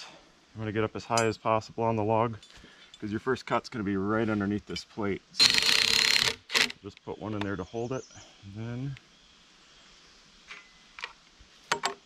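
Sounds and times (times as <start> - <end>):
faint outdoor background hiss: 0.0 - 12.0.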